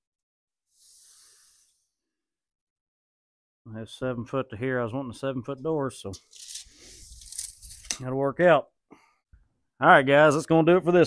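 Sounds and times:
tape measure retracting whir: 0:06.3 - 0:07.9.

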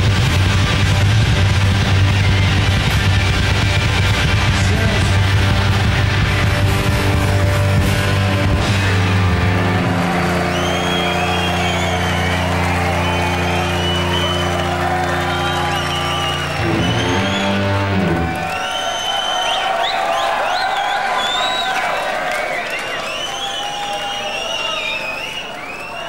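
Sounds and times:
rock band playing live: 0:00.0 - 0:18.6
crowd cheering and whistling: 0:00.0 - 0:26.0.

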